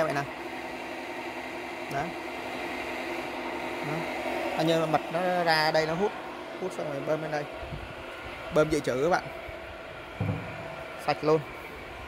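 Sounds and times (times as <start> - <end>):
electric pump humming: 0.0 - 12.0.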